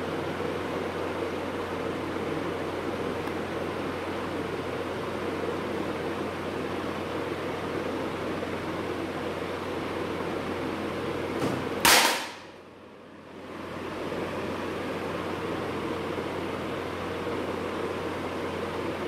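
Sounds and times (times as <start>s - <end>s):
background hiss and hum: 0.0s - 19.0s.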